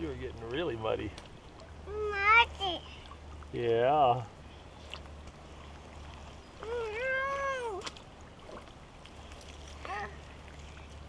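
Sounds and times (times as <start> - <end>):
toddler whining no: 6.6 - 7.8.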